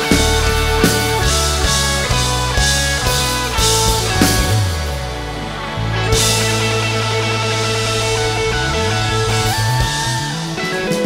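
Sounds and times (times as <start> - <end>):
bass: 0.0 - 11.0
drum kit with cymbal hits: 0.0 - 11.0
electric guitar: 0.0 - 11.0
keyboard: 0.0 - 11.0.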